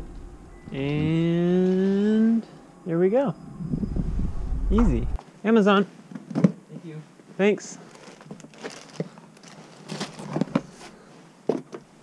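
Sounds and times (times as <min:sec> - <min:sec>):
packaging rustling: 0:07.8 - 0:11.1.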